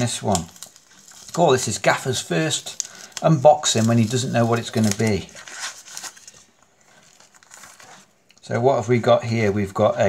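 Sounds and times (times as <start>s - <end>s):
plastic sleeve rustling: 0.0s - 8.6s.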